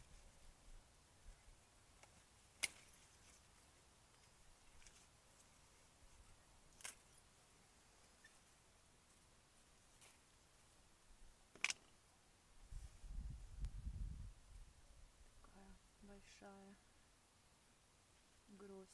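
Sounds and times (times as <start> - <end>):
sharp clicks among grape stems: 2.0 - 3.4, 6.7 - 7.1, 11.5 - 11.9.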